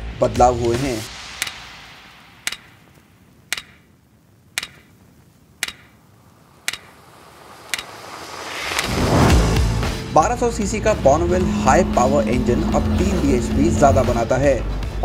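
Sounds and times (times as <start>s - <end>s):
faint hiss: 0.0s - 10.8s
sharp ticks: 1.2s - 9.0s
rising whoosh: 6.4s - 15.0s.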